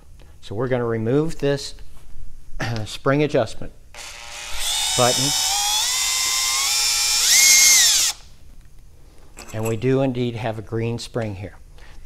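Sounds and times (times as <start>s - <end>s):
cordless drill motor whine: 4.0s - 8.3s.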